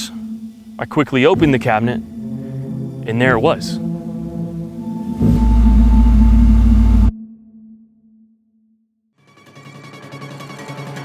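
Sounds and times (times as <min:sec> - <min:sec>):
deep bass rumble hit: 0:00.0 - 0:07.4
sustained droning musical tone: 0:00.0 - 0:08.2.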